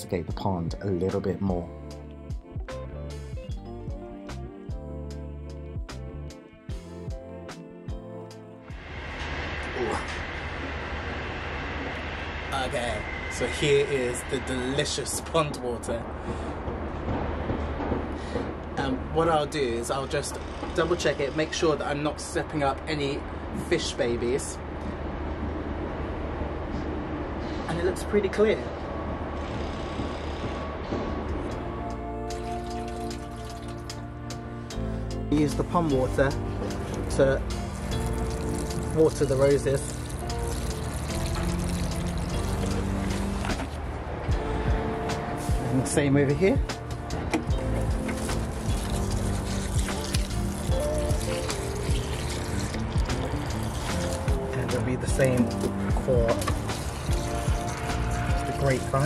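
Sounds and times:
background music with held tones: 0.0 - 27.0, 27.8 - 59.0
distant city traffic rumble: 8.8 - 59.0
water pouring onto soil: 32.3 - 34.0, 36.0 - 43.7, 47.6 - 59.0.

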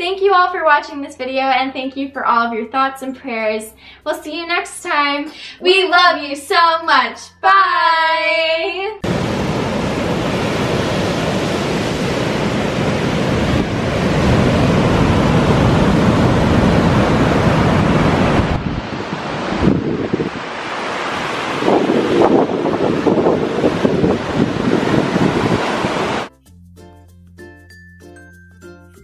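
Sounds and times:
surf breaking on beach: 9.0 - 26.3
wind buffeting microphone: 9.0 - 26.3.

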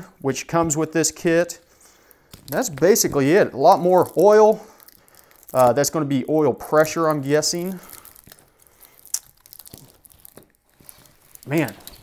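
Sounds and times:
braided wiring loom rustling: 0.0 - 12.0
plastic connectors clicking: 2.0 - 5.9, 6.7 - 12.0.

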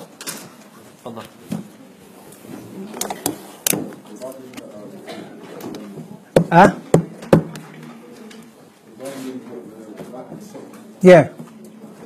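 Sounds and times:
faint room noise: 0.0 - 12.0
sharp knocks: 6.3 - 7.6.

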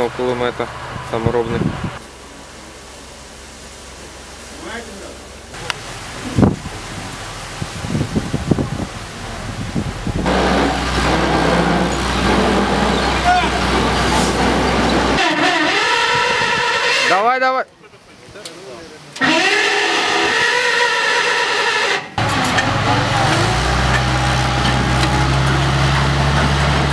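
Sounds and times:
heavy vehicle engine running: 0.0 - 16.0, 22.2 - 26.9.

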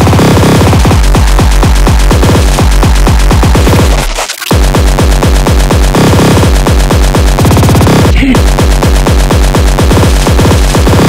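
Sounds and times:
distorted kick drum: 0.0 - 11.0.

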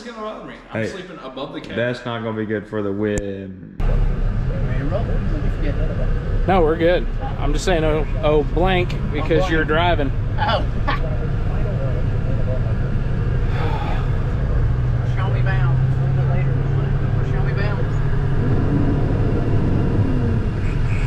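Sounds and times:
diesel engine droning: 3.5 - 21.0.

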